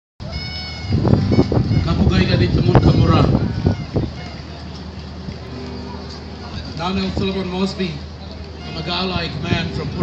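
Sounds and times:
people talking: 0:01.7 - 0:10.0.

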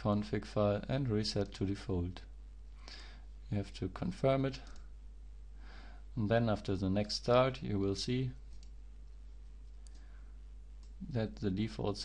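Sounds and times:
steady low hum: 0:00.0 - 0:12.0
computer mouse click: 0:08.5 - 0:08.8.

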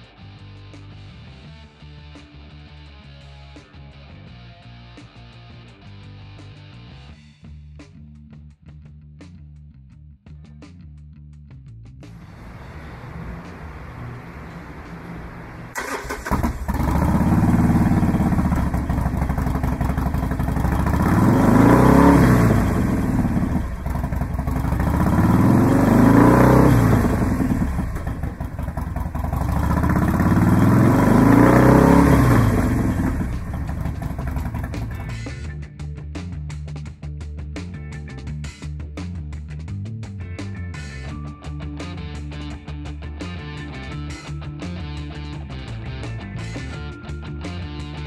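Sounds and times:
motorcycle engine starting and revving: 0:12.2 - 0:35.4.

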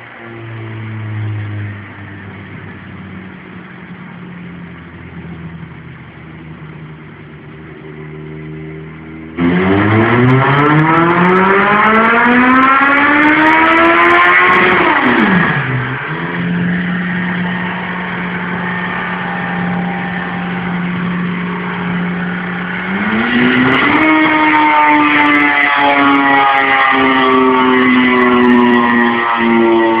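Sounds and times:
motorcycle engine revving: 0:00.0 - 0:30.0.

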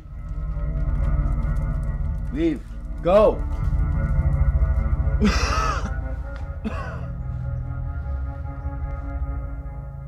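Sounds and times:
background music: 0:00.0 - 0:10.0
man laughing: 0:05.2 - 0:07.1.

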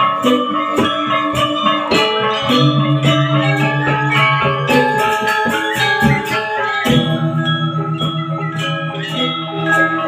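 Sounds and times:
gamelan ensemble playing: 0:00.0 - 0:10.0.

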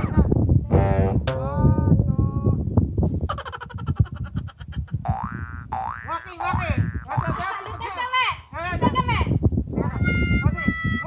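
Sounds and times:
springy boing twang: 0:00.8 - 0:01.6, 0:05.1 - 0:07.3
voices: 0:06.0 - 0:11.0.

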